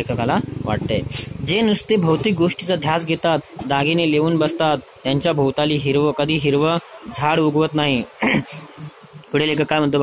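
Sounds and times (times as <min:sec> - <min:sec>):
man reading aloud: 0:00.0 - 0:10.0.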